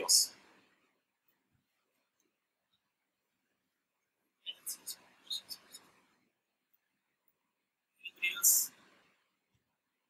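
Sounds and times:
person whispering: 0:04.5 - 0:05.9, 0:08.0 - 0:08.8.

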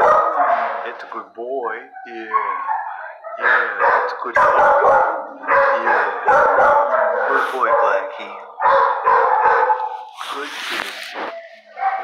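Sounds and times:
dogs howling and barking: 0:00.0 - 0:00.9, 0:01.8 - 0:10.1, 0:11.7 - 0:12.0.

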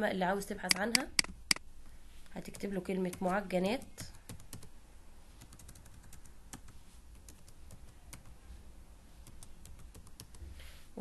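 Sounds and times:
computer keyboard typing: 0:02.4 - 0:04.7, 0:05.4 - 0:08.4, 0:09.2 - 0:10.4.

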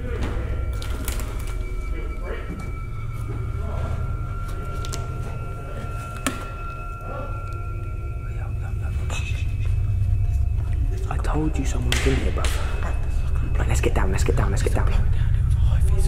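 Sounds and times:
suspense music drone: 0:00.0 - 0:16.0.

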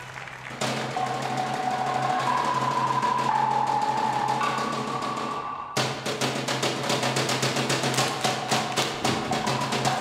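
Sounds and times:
fast drumming roll: 0:00.4 - 0:10.0.

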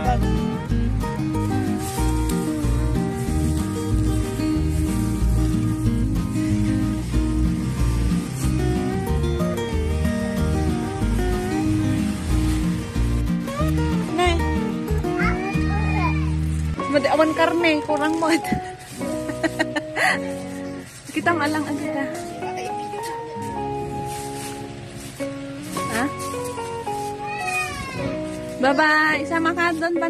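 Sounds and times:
music with heavy bass beat: 0:00.0 - 0:15.7
simple background melody: 0:00.0 - 0:30.0.

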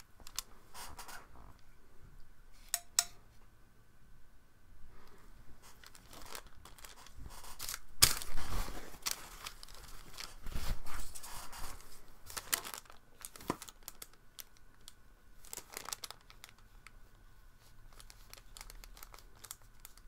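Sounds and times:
paper towel crinkling: 0:05.6 - 0:20.0.

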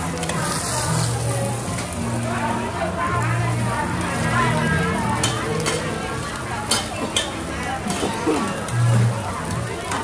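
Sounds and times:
background chatter: 0:00.0 - 0:10.0
food sizzling in frying: 0:00.0 - 0:10.0.

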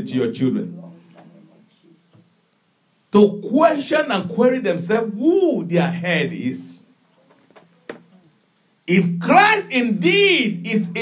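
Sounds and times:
man speaking: 0:00.0 - 0:02.1, 0:03.1 - 0:06.9, 0:08.9 - 0:11.0.

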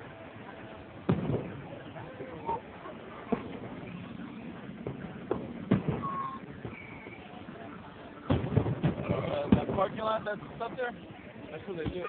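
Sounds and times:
distant fireworks bursting: 0:00.0 - 0:12.0.

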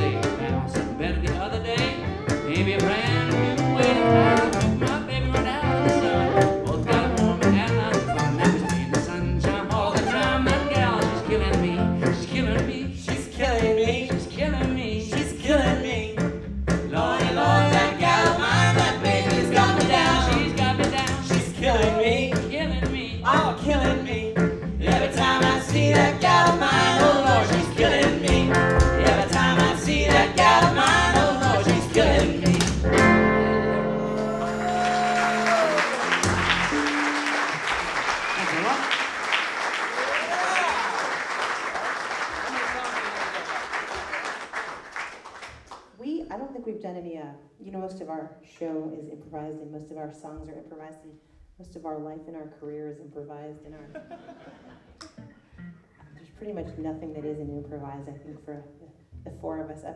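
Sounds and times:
bowed fiddle melody: 0:00.0 - 0:09.3
strummed guitar: 0:00.0 - 0:37.8
plucked upright bass: 0:00.0 - 0:37.9, 0:55.0 - 0:59.9.

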